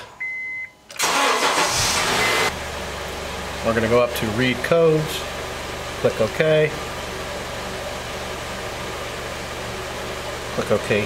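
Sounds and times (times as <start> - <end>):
car engine cranking and starting: 0.8 - 11.0
short high beep: 2.2 - 2.5.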